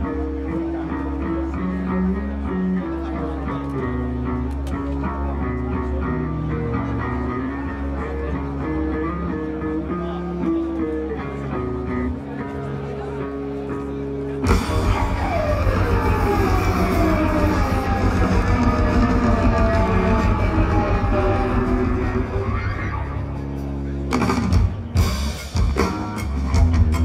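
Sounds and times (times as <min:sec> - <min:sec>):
electric guitar and bass riff: 0:00.0 - 0:27.0
drums and cymbals crashing: 0:14.5 - 0:23.1, 0:24.1 - 0:27.0.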